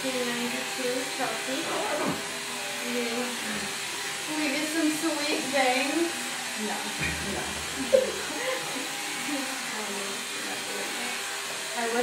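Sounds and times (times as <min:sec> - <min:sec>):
woman talking: 0:00.0 - 0:02.2, 0:02.8 - 0:03.7, 0:04.3 - 0:12.0
electric hair clippers buzzing: 0:00.0 - 0:12.0.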